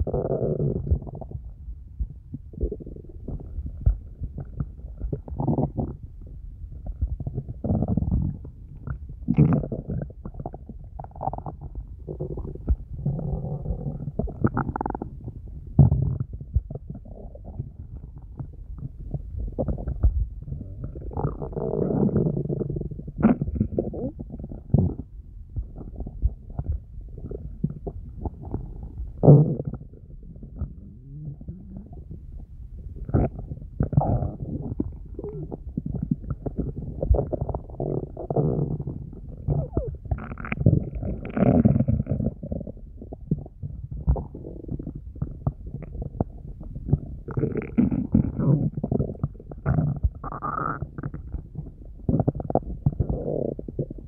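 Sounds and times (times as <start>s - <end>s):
stomach growling and gurgling: 0.0s - 54.0s.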